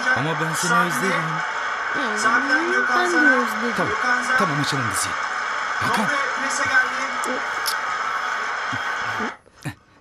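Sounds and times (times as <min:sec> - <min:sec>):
stadium crowd roar: 0:00.0 - 0:09.4.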